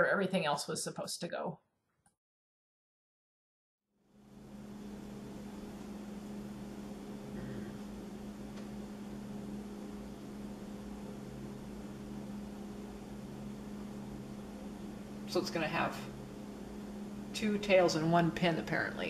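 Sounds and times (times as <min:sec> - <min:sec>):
electrical hum: 0:04.0 - 0:19.0.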